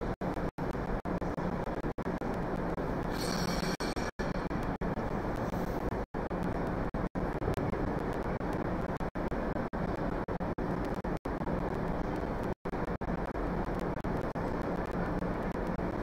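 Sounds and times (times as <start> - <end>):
low rumbling arena background noise: 0.0 - 16.0.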